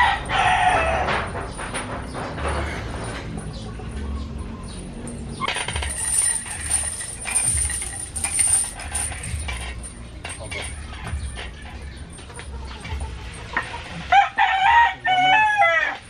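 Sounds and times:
barbell chains clinking: 0.0 - 14.4.

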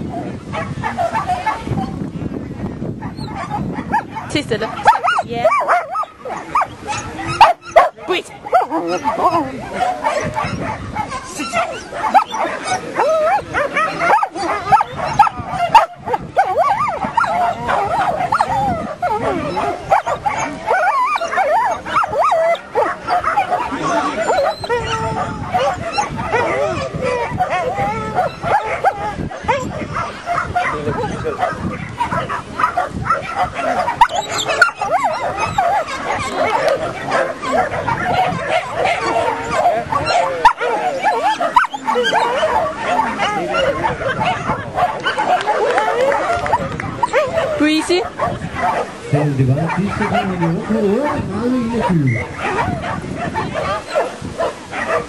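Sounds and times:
dogs barking and yipping: 0.0 - 2.1, 2.8 - 55.0
people's voices: 0.0 - 55.0.

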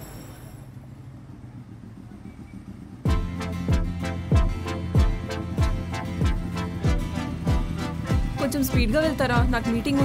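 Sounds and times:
motorcycle engine humming: 0.0 - 10.0.

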